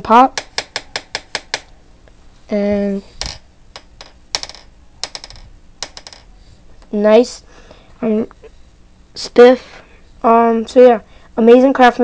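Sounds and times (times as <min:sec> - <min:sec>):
fingerboard deck clicking on table: 0:00.4 - 0:01.8, 0:03.2 - 0:06.2.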